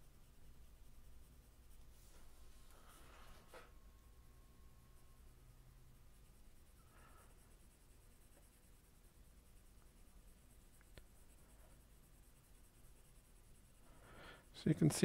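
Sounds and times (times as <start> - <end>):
pencil shading on paper: 0.0 - 3.7, 5.0 - 14.0.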